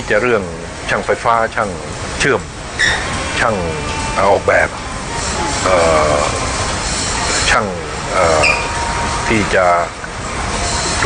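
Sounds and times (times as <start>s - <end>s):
low background noise: 0.0s - 11.0s
person speaking: 3.4s - 6.6s, 7.4s - 8.7s.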